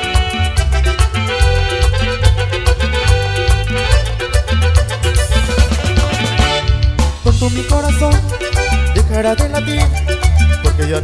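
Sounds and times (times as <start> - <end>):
live band playing latin dance music: 0.0 - 11.0.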